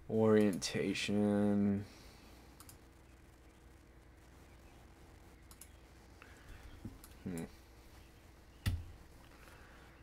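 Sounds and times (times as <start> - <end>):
faint room hum: 0.0 - 10.0
computer mouse clicks: 2.6 - 2.8, 5.4 - 5.8.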